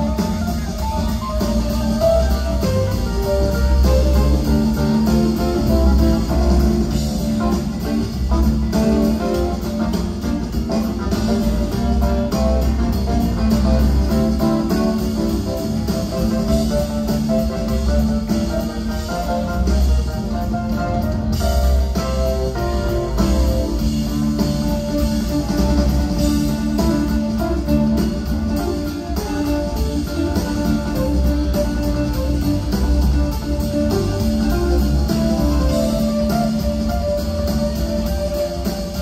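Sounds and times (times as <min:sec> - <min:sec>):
live rock band playing: 0:00.0 - 0:39.0.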